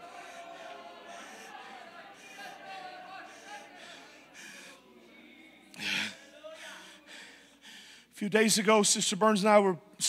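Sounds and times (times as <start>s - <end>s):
man's sharp breath: 5.8s - 8.2s.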